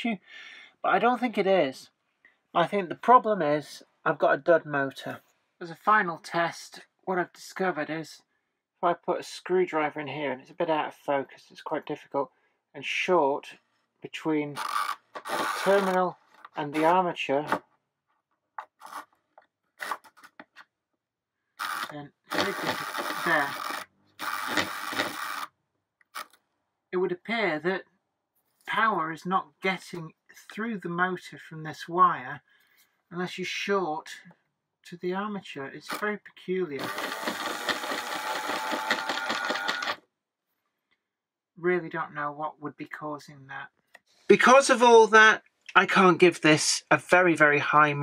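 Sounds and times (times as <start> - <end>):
screwdriver scraping metal: 14.6 - 16.0, 21.6 - 25.5
small electric motor whirring: 14.6 - 16.0, 21.6 - 25.5, 36.8 - 40.0.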